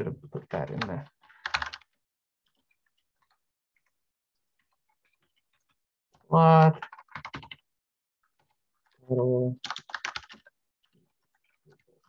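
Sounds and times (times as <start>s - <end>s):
typing on keyboard: 0.7s - 1.9s, 6.8s - 7.6s, 9.6s - 10.5s.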